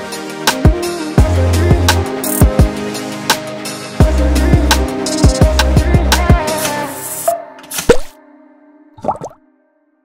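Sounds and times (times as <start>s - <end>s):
background music held chord: 0.0s - 10.0s
bubbly pitch-bending sound effect: 9.0s - 9.4s.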